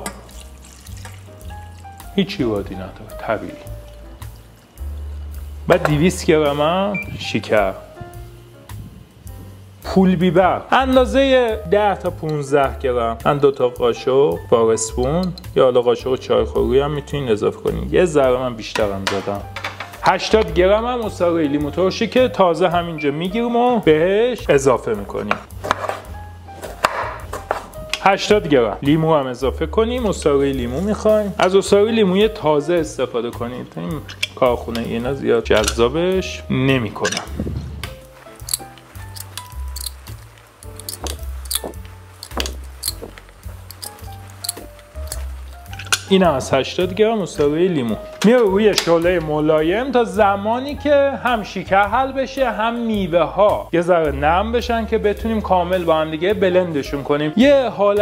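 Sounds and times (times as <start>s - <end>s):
water pouring and splashing: 0.0s - 5.1s
soft background music: 0.0s - 58.0s.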